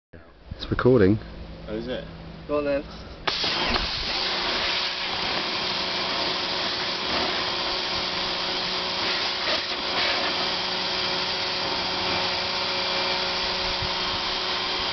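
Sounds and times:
pressure washer running: 3.3s - 14.9s.

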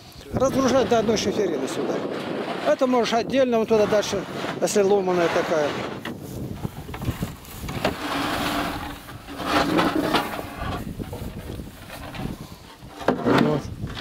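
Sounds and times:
men's voices: 0.1s - 6.0s
roofing sheets knocking and scraping: 1.9s - 14.0s.

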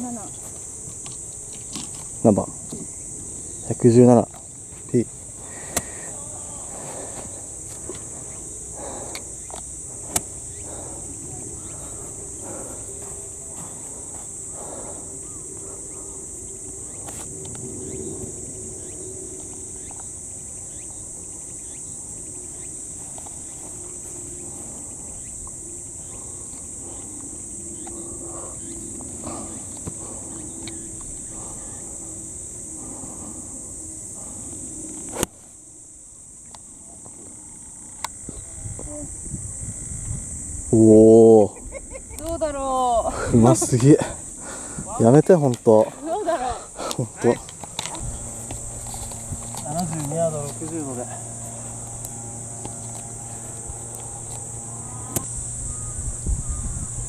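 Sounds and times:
high-pitched insect drone: 0.0s - 57.0s
golf club striking ball: 10.1s - 10.4s.

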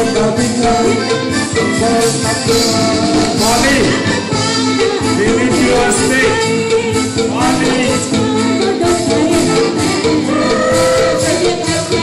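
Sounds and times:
drums: 0.0s - 12.0s
keyboard: 0.0s - 12.0s
person singing: 0.0s - 12.0s.

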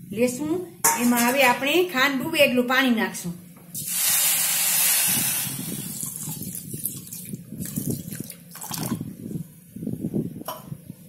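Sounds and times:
water pouring onto sugar: 3.9s - 9.0s.

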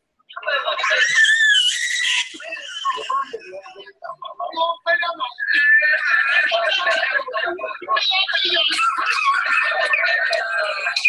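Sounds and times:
people shrieking and laughing: 0.6s - 3.1s, 8.7s - 11.0s.

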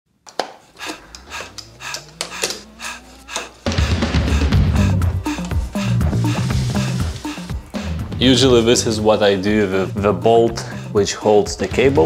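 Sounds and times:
slowly rising tone: 0.7s - 7.8s
electronic beat and bass: 0.8s - 10.9s.

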